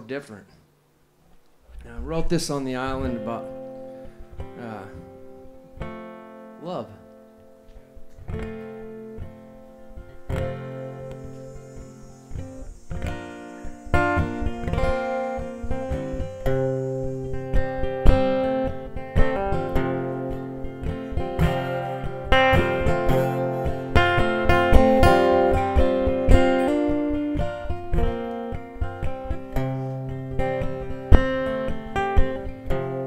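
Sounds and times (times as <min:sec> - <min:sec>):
acoustic guitar playing: 0:01.1 - 0:33.0.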